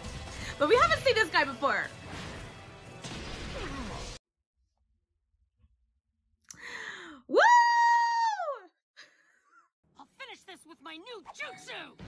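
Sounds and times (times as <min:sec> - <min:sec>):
woman cheering woo: 0:07.3 - 0:08.7.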